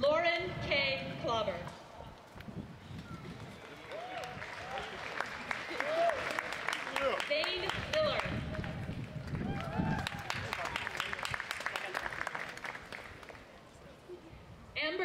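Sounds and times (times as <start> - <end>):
crowd applauding: 3.4 - 13.5
cheers: 3.7 - 7.2, 9.2 - 12.1.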